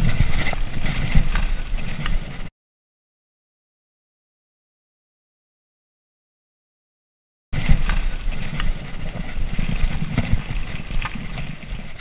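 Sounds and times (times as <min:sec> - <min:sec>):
bike clicks and rattles: 0:00.0 - 0:02.5, 0:07.6 - 0:12.0
wind and tyres rumbling: 0:00.0 - 0:02.5, 0:07.5 - 0:12.0.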